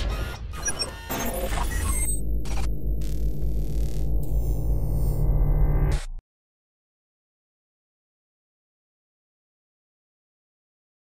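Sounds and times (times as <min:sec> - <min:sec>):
glitchy digital clicks: 0:00.0 - 0:06.2
deep bass drone: 0:02.2 - 0:06.2.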